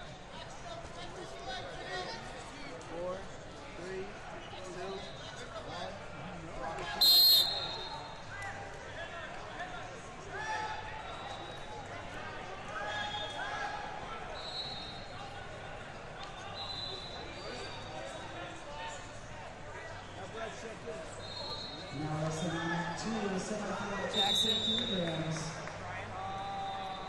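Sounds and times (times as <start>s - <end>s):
distant whistles: 7.0s - 8.0s, 21.2s - 21.9s
referee whistle blast: 7.0s - 8.0s, 24.1s - 25.0s
hall chatter: 7.0s - 27.0s.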